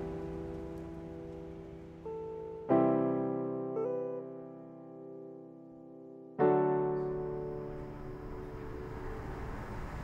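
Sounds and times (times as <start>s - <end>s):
sustained piano chord: 0.0s - 10.0s.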